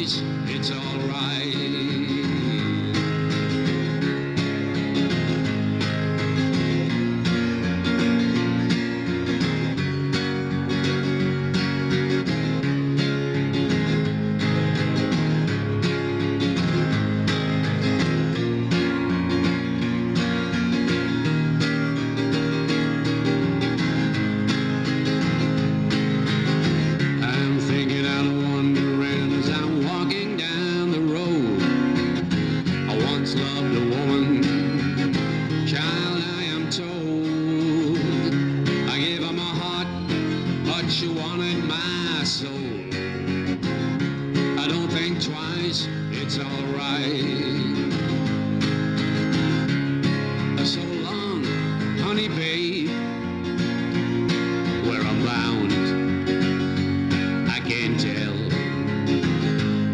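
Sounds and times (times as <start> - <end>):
acoustic guitar strumming chords: 0.0 - 59.9.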